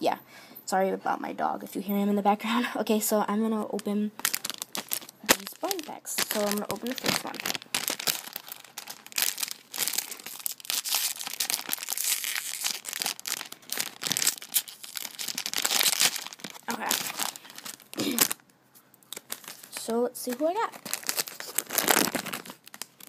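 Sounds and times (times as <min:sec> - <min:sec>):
foil packet crinkling and tearing: 0:03.7 - 0:18.4, 0:19.0 - 0:23.0.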